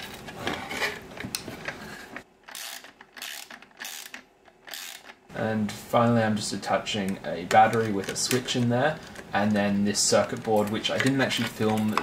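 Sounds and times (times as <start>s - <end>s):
plastic parts scraping and clicking: 7.0s - 12.0s.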